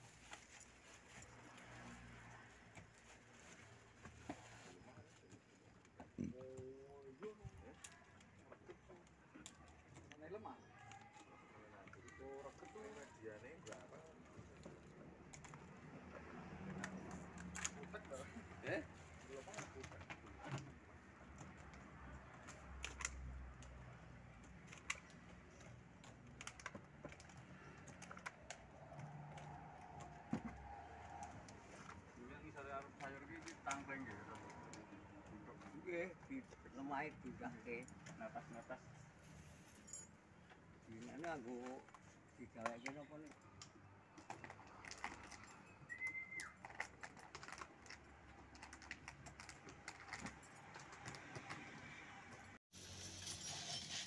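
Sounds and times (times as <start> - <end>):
short whistle: 45.9 - 46.6.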